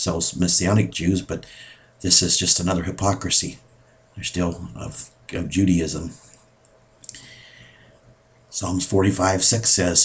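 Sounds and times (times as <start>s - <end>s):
person speaking: 2.0s - 6.3s, 8.5s - 10.0s.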